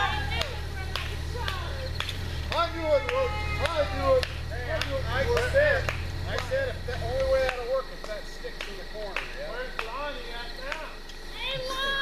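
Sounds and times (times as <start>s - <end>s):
people talking: 0.0s - 12.0s
vehicle engine hum: 0.0s - 12.0s.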